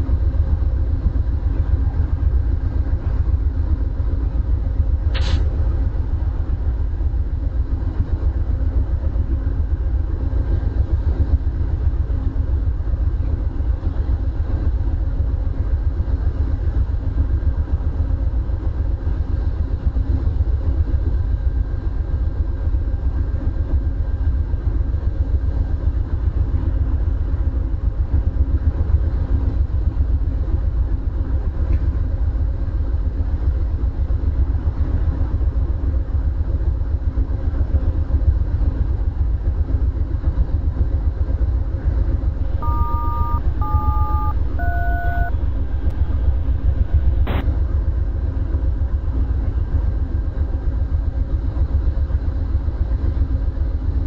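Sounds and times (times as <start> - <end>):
stationary train rumble: 0.0 - 42.6
touch-tone beeps: 42.4 - 47.4.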